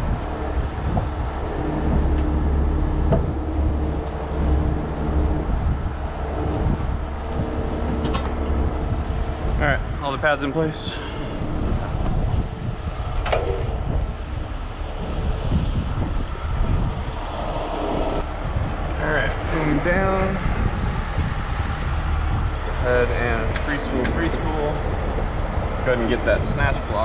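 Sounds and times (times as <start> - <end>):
diesel engine rumbling: 0.0 - 27.0
indistinct voices: 0.0 - 27.0.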